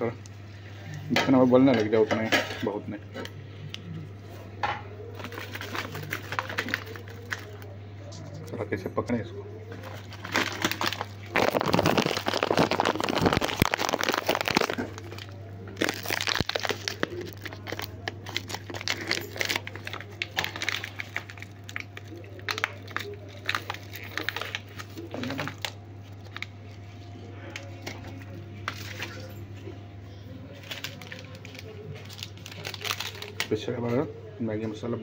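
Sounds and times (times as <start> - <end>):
steady low hum: 0.0 - 35.0
plastic packets crinkling: 5.1 - 7.8, 9.7 - 29.4, 30.4 - 33.7.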